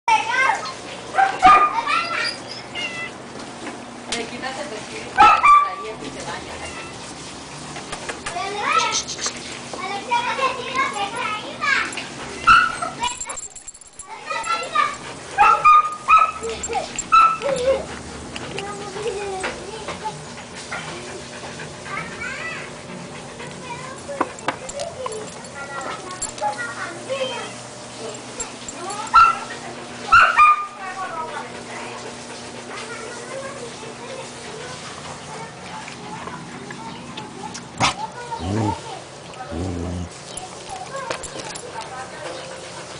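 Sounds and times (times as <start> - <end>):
puppies whining and yipping: 0.6 - 3.2, 12.2 - 19.6, 28.0 - 30.8, 38.3 - 41.7.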